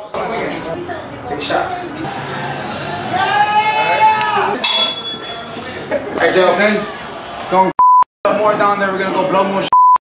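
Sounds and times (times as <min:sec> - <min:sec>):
man yelling high-pitched: 0:03.2 - 0:04.6.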